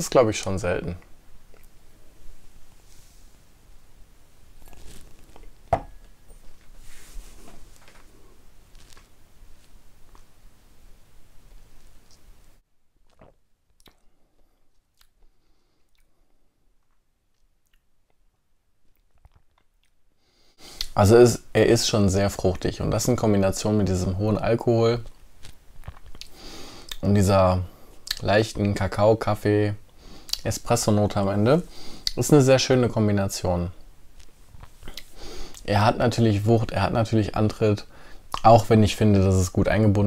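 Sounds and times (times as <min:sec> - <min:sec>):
man speaking: 0:00.0 - 0:01.0, 0:20.9 - 0:25.1, 0:30.4 - 0:33.8, 0:35.6 - 0:40.0
soft breath drawn in: 0:02.8 - 0:03.4
glass knocking on wooden coaster: 0:05.7 - 0:05.9
wet mouth clicks and lip smacks: 0:13.1 - 0:16.1, 0:16.9 - 0:18.2, 0:18.9 - 0:20.0.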